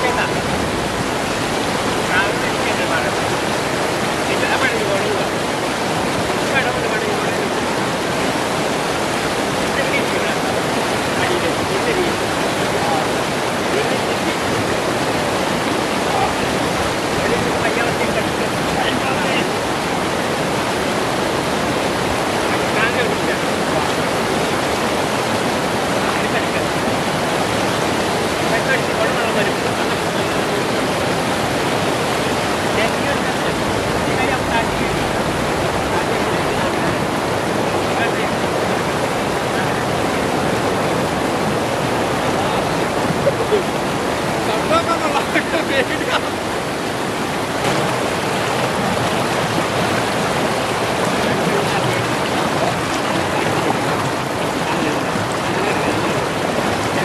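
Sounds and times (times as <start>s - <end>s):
water rushing over rocks: 0.0s - 57.0s.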